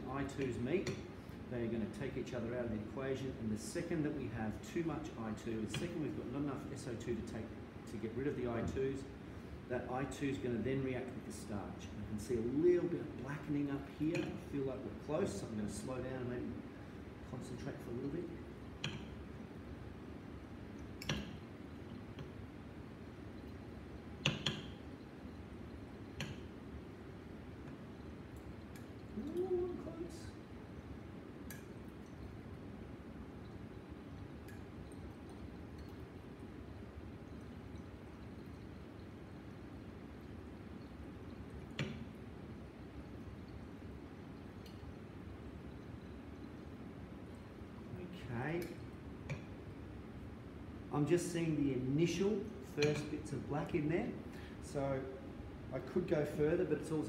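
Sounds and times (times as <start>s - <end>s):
faint room hum: 0.0s - 57.0s.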